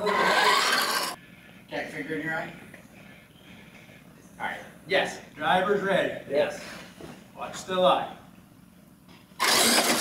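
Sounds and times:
toy truck running on hard floor: 0.0s - 1.2s, 9.4s - 10.0s.

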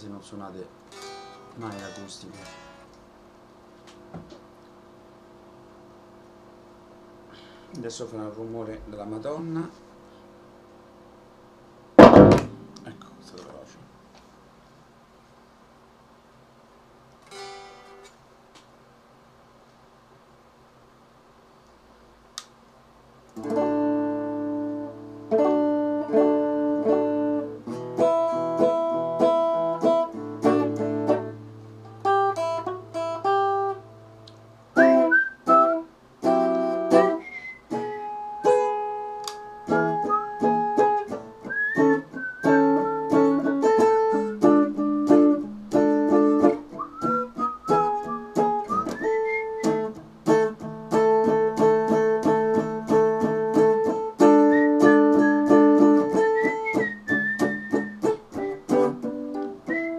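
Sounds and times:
electric guitar chords ringing: 0.9s - 3.0s, 12.0s - 13.4s, 23.4s - 59.9s
electric guitar lead with string bends: 0.9s - 3.0s, 23.4s - 59.9s.

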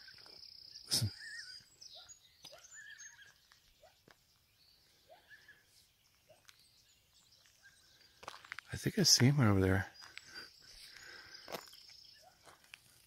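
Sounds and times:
faint distant bird calls: 0.0s - 13.0s.

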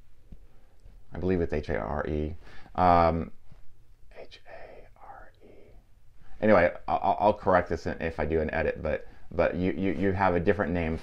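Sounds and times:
man whispering: 4.1s - 6.7s.

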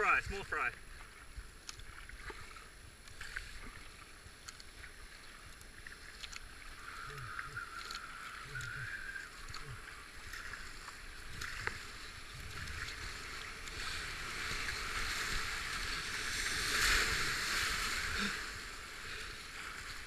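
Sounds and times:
kayak paddle strokes splashing: 0.0s - 20.0s.

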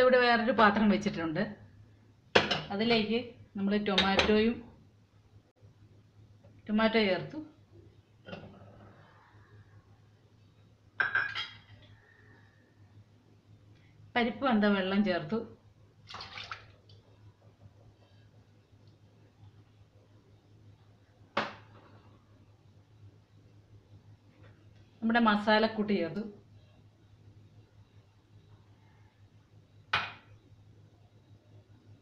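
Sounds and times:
water splashing into pot: 16.0s - 17.0s.

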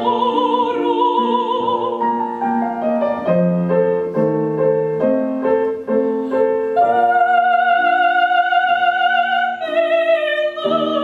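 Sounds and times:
soprano singing with vibrato: 0.0s - 2.6s, 5.9s - 11.0s
grand piano playing: 0.0s - 11.0s.

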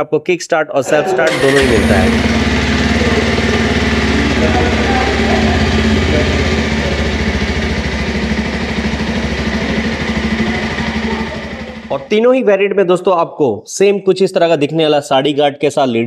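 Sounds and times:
motorcycle engine idling: 1.3s - 12.1s.

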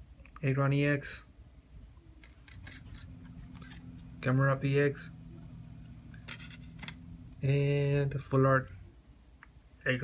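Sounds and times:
faint steady hum: 0.0s - 10.0s
cards scraping on a desk: 2.2s - 4.2s, 6.1s - 7.1s.

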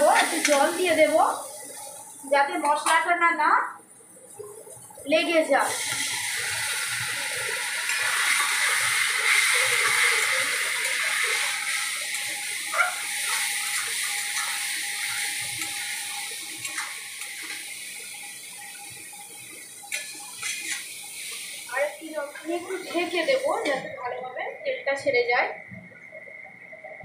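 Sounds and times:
masala sizzling in pan: 0.0s - 27.0s.

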